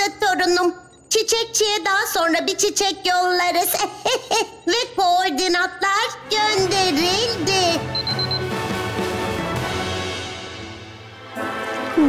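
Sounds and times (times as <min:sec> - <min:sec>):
background music: 0:05.4 - 0:12.0
high electronic beeps: 0:07.9 - 0:08.5.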